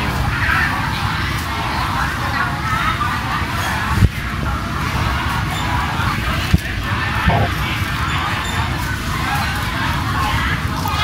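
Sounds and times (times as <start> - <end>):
faint distant chatter: 2.4 - 9.5
steady low rumble: 7.3 - 7.7.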